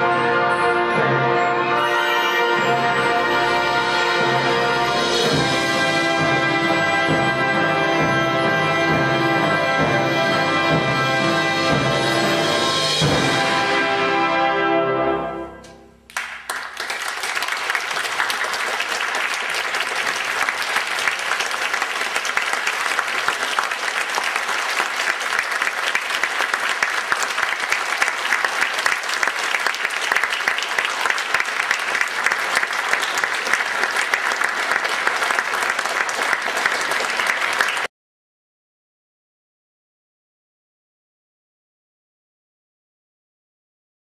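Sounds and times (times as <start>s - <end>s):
audience applause: 16.1s - 37.9s.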